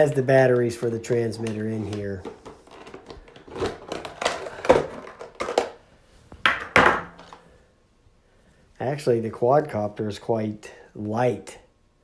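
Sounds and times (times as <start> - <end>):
plastic packaging clicking and crackling: 0.1 - 5.8.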